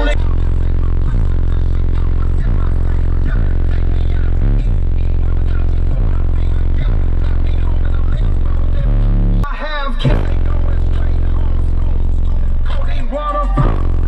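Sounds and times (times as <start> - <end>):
loud hip-hop bass line: 0.0 - 14.0.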